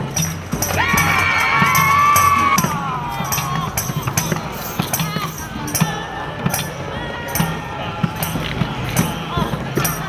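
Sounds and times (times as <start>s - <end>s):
steady drumbeat: 0.0s - 10.0s.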